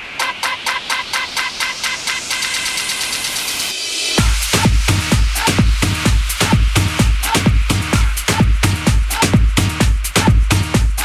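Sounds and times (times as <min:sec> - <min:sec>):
hiss-like noise wash: 0:00.0 - 0:08.4.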